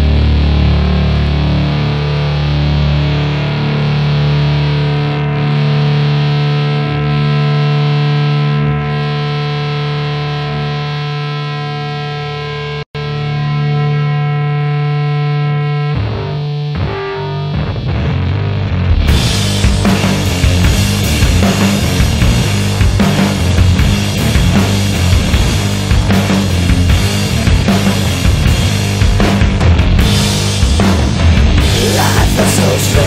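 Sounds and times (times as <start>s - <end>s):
distorted electric guitar droning: 0.0s - 33.0s.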